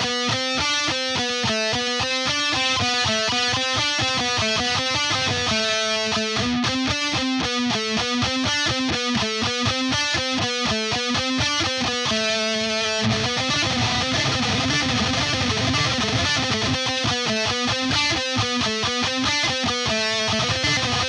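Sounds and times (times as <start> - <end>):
electric guitar alternate picking: 0.0 - 21.0.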